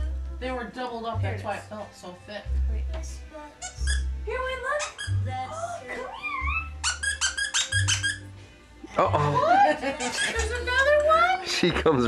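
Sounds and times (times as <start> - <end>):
background music with low bass: 0.0 - 12.0
squeaky dog toy squeaking: 3.6 - 8.4, 10.0 - 10.7.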